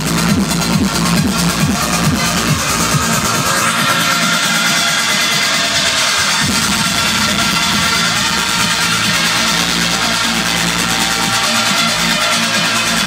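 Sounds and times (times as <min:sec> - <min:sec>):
deep bass: 0:00.0 - 0:13.0
electronic dance music: 0:00.0 - 0:13.0.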